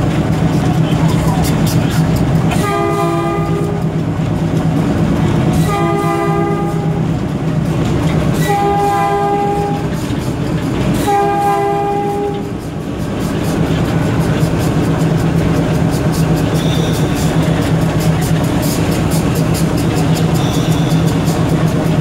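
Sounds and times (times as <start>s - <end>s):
diesel engine running: 0.0s - 22.0s
locomotive air horn blasts: 2.5s - 3.9s, 5.6s - 7.1s, 8.4s - 10.0s, 10.9s - 12.6s, 20.3s - 21.3s.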